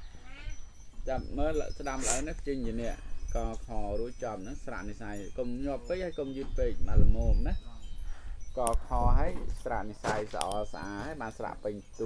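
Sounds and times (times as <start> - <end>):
sharp high clinks: 0.0 - 12.0.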